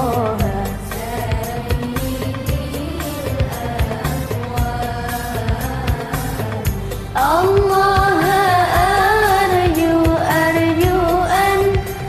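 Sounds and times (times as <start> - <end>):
steady drum beat: 0.0 - 12.0.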